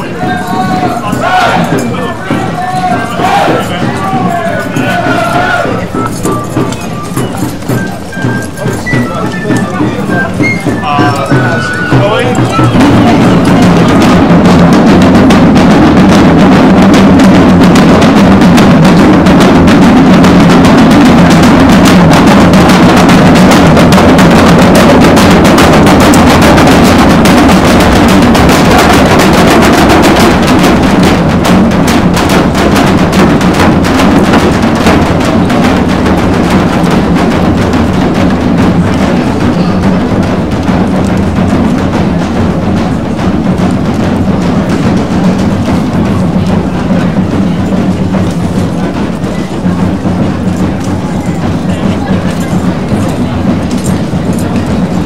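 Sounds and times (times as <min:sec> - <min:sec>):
marching drums beating: 0:00.0 - 0:55.0.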